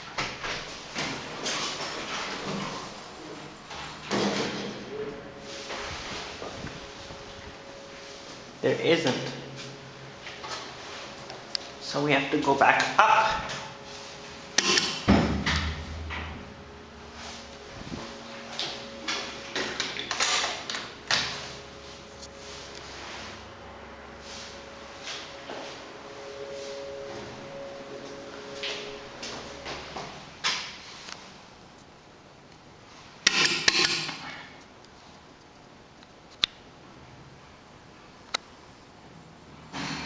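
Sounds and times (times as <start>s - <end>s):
low elevator hum: 0.0s - 33.2s
footsteps: 24.1s - 30.4s.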